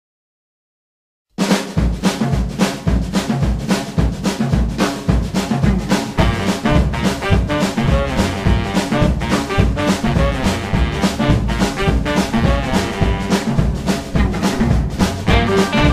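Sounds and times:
boogie-woogie band: 1.4 - 15.9
drum kit swing beat: 1.4 - 15.9
bass notes: 5.6 - 15.9.

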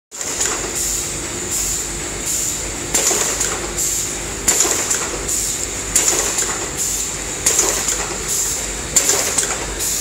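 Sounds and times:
packing machine mechanical noise: 0.1 - 10.0.

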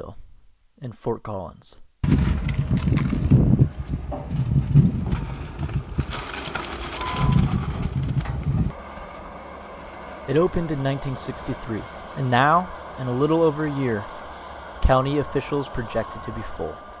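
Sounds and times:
heavy equipment rumbling: 2.0 - 17.0
steady engine hum: 2.0 - 17.0.

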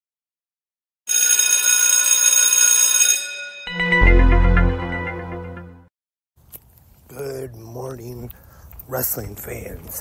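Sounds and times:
bright high bell ringing: 1.1 - 4.1
intro music with heavy bass: 3.8 - 5.9.

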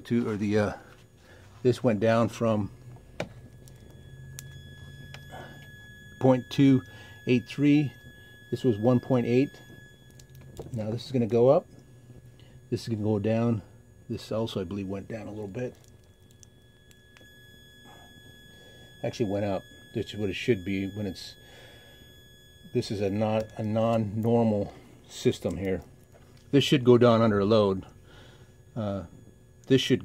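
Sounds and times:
low hum: 0.0 - 30.0
transformer high-pitched whine: 0.0 - 30.0
second higher tone: 1.6 - 25.8
click: 15.8 - 17.3.

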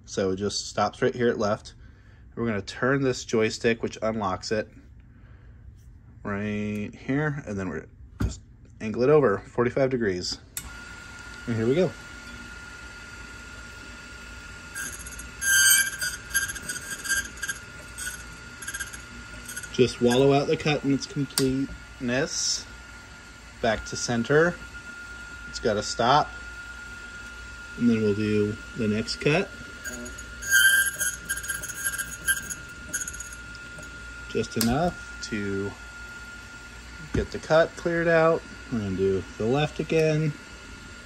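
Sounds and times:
key cutting machine whine: 10.6 - 40.8
cutting wheel scraping key: 14.8 - 20.4, 29.8 - 33.9.

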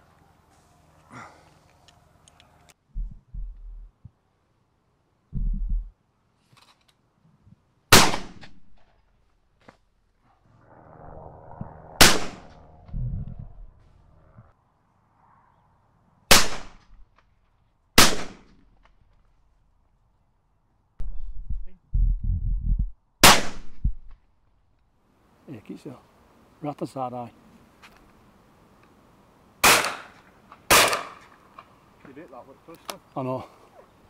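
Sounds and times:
dull low thumps: 2.8 - 4.2, 5.3 - 6.0, 11.3 - 14.5, 21.0 - 24.2
shotgun shots: 7.9 - 8.6, 12.0 - 12.5, 16.3 - 16.8, 18.0 - 18.5, 23.2 - 23.8, 29.6 - 31.2.

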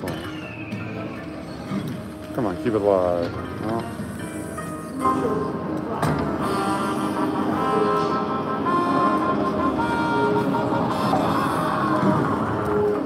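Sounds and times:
busy casino noise: 0.0 - 13.0
slot machine electronic tune: 6.7 - 11.9.

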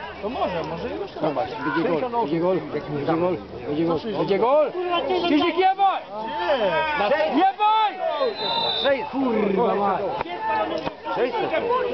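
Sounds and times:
men shouting excitedly: 4.3 - 11.9.

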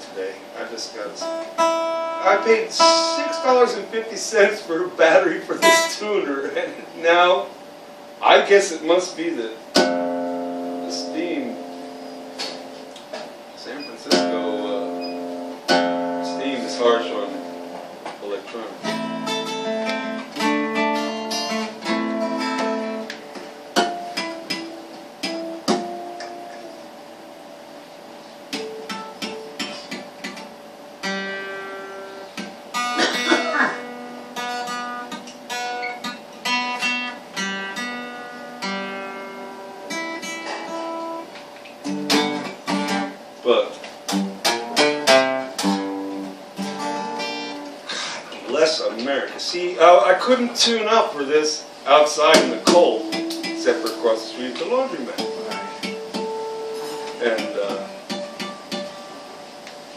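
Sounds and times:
acoustic guitar picking and strumming: 0.0 - 59.9.

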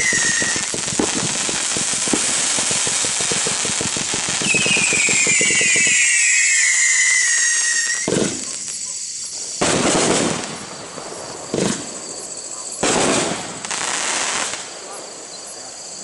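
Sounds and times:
firework whistle falling in pitch: 0.0 - 0.7, 4.4 - 9.0
firework crackle: 0.0 - 14.8
firework bursts: 0.0 - 15.2.

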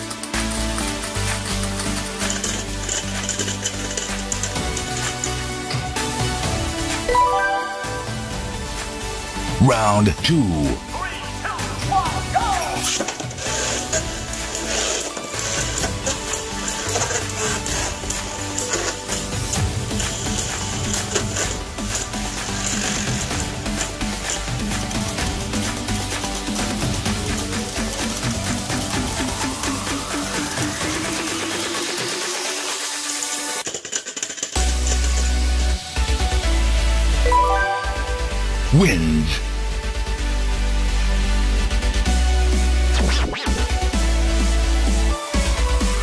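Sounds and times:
background music: 0.0 - 33.8, 34.5 - 46.0
spinning tops clashing together: 0.1 - 5.6, 30.3 - 35.6.

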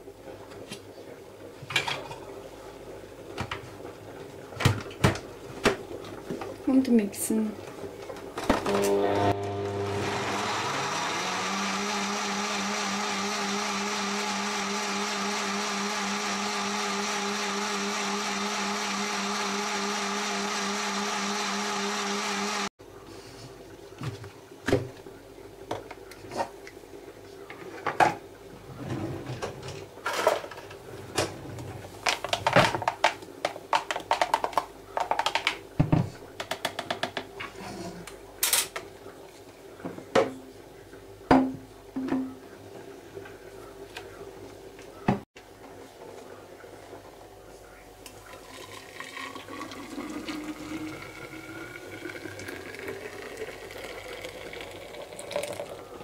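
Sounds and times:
blender motor running: 8.6 - 22.7.

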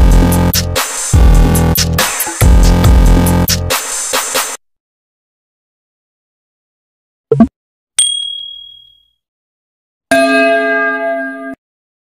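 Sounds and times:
notification bell chime: 8.0 - 9.0
click with high ding: 8.0 - 9.2.

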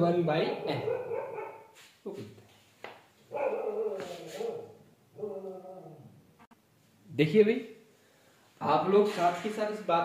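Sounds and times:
dog barking: 0.3 - 1.8, 3.3 - 6.0.

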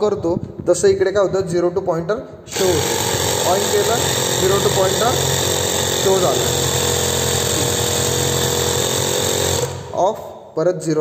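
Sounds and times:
air compressor humming: 2.5 - 10.5.

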